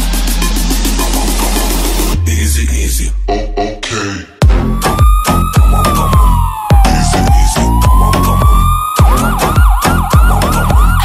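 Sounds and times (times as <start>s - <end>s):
electronic music with bass beat: 0.0s - 11.0s
siren sample: 4.4s - 11.0s.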